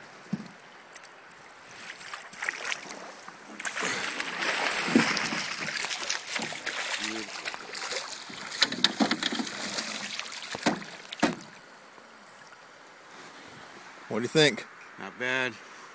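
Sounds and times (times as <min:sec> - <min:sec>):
water splashing and sloshing: 0:00.0 - 0:13.8
sharp knocks: 0:10.6 - 0:11.5.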